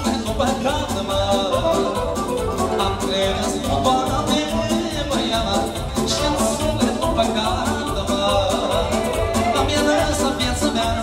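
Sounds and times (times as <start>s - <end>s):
band playing fast dance music: 0.0s - 11.0s.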